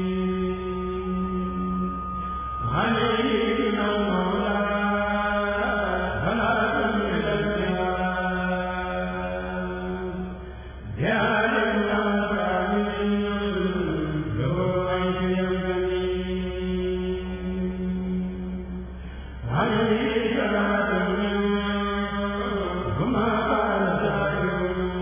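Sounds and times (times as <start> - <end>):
steady held low note: 0.0 - 25.0.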